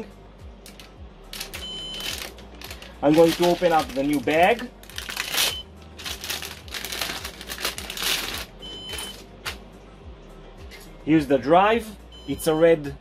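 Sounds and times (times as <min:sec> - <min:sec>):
low fan hum: 0:00.0 - 0:12.5
plastic bag crinkling: 0:01.4 - 0:09.1.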